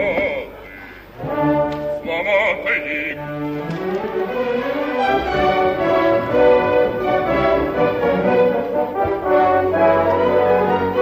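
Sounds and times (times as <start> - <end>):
french horns: 1.1 - 11.0
orchestra playing with brass: 1.1 - 11.0.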